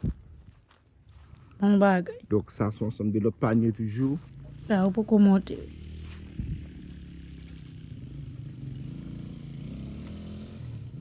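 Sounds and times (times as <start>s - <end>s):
engine running steadily: 3.4s - 11.0s.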